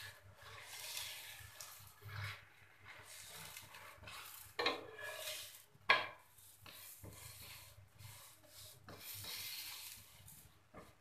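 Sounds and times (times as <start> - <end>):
faint sizzle of frying: 0.0 - 11.0
metal spatula scraping pan: 0.0 - 11.0
spatula clattering against pan: 4.6 - 5.2, 5.9 - 6.2.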